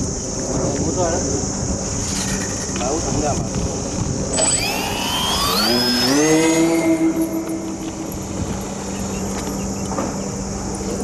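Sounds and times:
electric motor whine: 0:03.6 - 0:11.0
low steady hum: 0:03.7 - 0:11.0.

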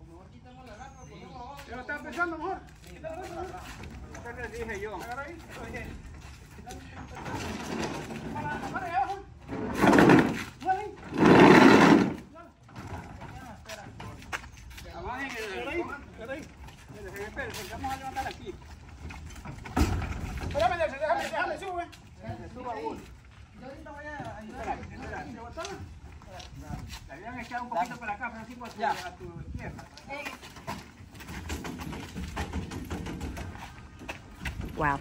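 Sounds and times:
people talking: 0:34.8 - 0:35.0.

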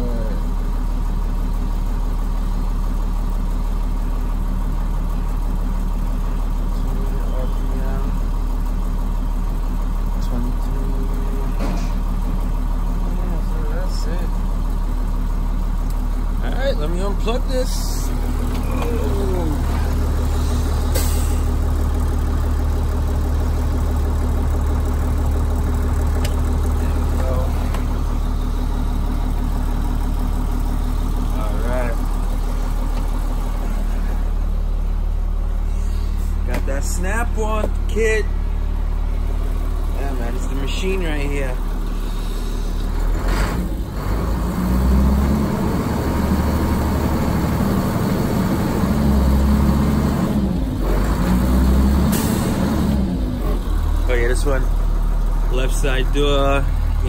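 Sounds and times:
diesel bus engine idling: 0:00.0 - 0:57.0.

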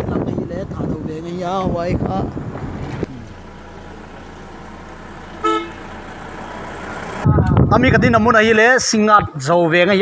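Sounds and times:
low steady rumble: 0:00.4 - 0:08.4
vehicle horn toot: 0:05.4 - 0:05.9.

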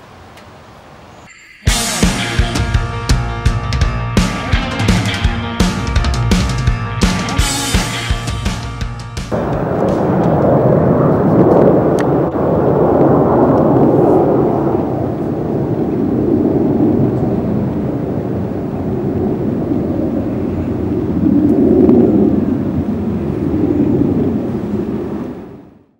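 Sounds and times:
aircraft engine roar overhead: 0:00.0 - 0:25.9.

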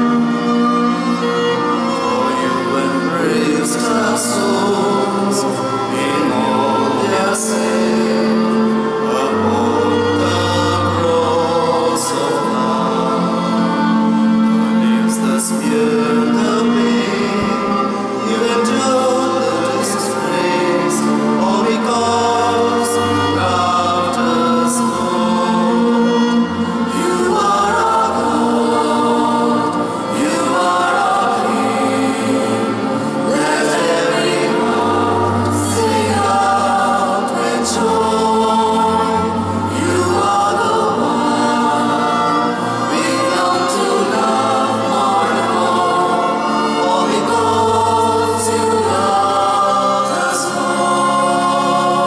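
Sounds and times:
choir singing a hymn: 0:00.0 - 0:52.0
string ensemble with cello: 0:00.0 - 0:52.0.

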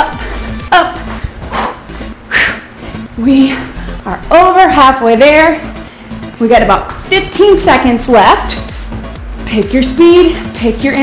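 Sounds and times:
workout music: 0:00.0 - 0:11.0.

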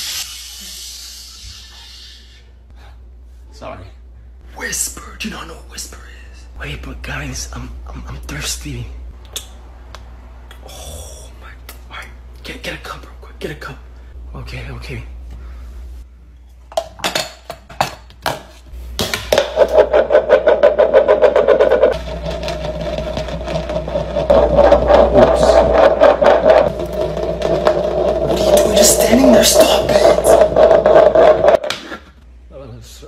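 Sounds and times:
bowl spinning on tile floor: 0:19.1 - 0:32.0.

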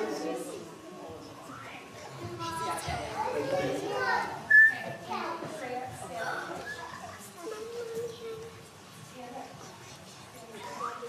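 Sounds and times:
young children chattering: 0:00.0 - 0:11.0
high whistle-like tone: 0:04.5 - 0:04.9.

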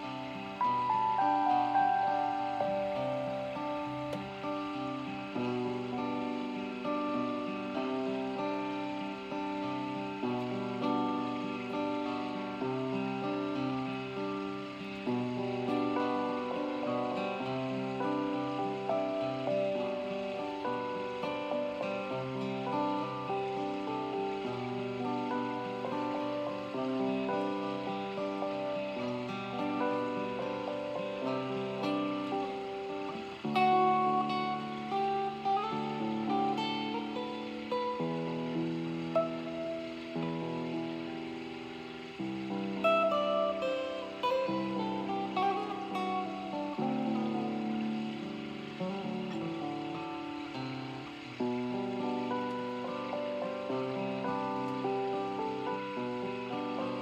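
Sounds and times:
acoustic guitar chords: 0:00.0 - 0:57.0
electronic keyboard chords: 0:00.0 - 0:57.0.

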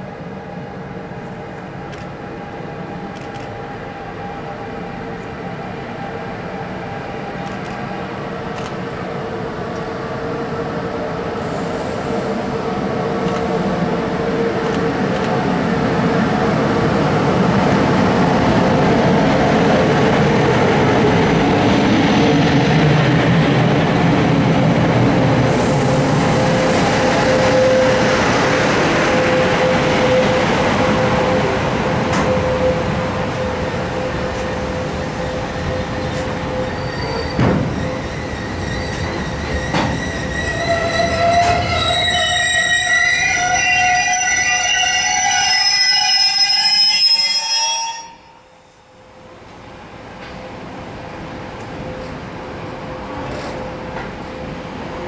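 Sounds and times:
train wheels rumbling on rail: 0:00.1 - 0:43.8, 0:49.0 - 0:55.0
wagon wheels squealing: 0:36.6 - 0:48.2.

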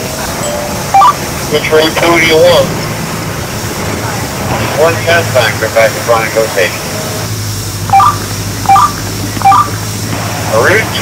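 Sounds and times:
bus engine hum: 0:00.0 - 0:11.0
two-note electronic beeps: 0:00.4 - 0:01.5, 0:07.9 - 0:09.8.

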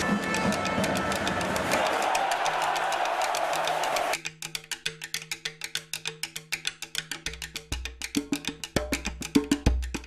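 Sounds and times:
clicking percussion beat: 0:00.0 - 0:10.0.

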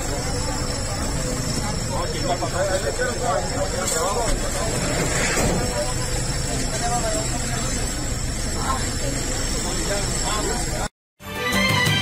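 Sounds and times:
low street noise rumble: 0:00.0 - 0:10.9
people talking: 0:00.0 - 0:10.9.

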